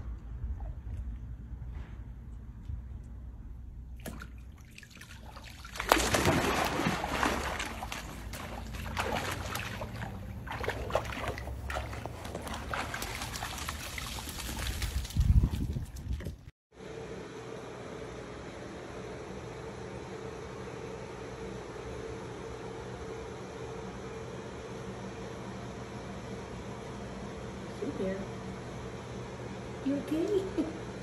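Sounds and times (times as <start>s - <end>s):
steady low hum: 0.0s - 31.0s
dog splashing into pool: 4.0s - 16.2s
water sloshing: 4.0s - 16.5s.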